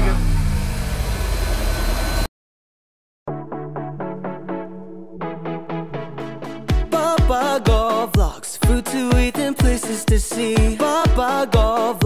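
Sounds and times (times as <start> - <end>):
outdoor background rumble: 0.0 - 2.3
man's voice: 6.7 - 12.0.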